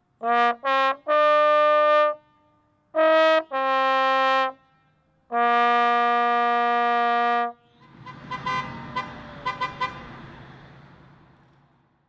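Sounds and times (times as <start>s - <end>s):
car horn toots: 5.5s - 10.2s.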